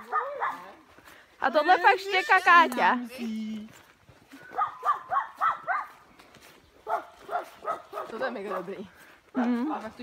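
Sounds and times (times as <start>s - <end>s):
dog yipping: 0.0s - 0.6s, 4.5s - 5.9s, 6.9s - 8.1s.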